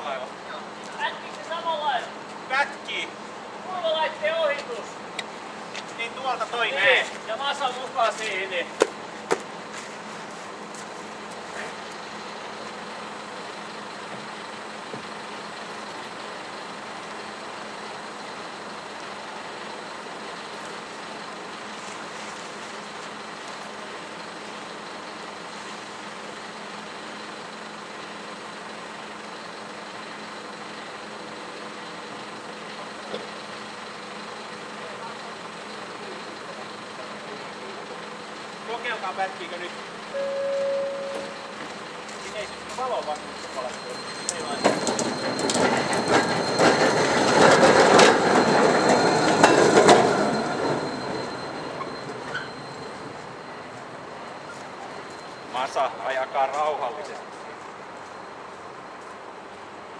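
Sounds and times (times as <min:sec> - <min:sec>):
tram equipment humming: 0:02.1 - 0:59.9.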